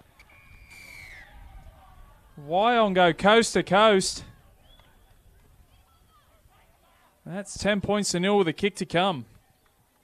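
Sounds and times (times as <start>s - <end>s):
open-air ambience: 0.0s - 10.0s
high whistled note sliding down: 0.3s - 1.3s.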